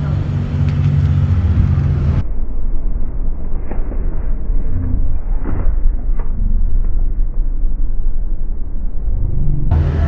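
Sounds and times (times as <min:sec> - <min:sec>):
motor vehicle rumbling: 0:00.0 - 0:10.0.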